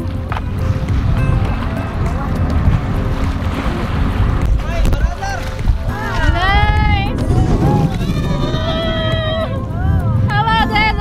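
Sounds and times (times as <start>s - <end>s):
boat engine rumble: 0.0s - 11.0s
wind on microphone: 0.0s - 11.0s
people exclaiming: 4.6s - 11.0s.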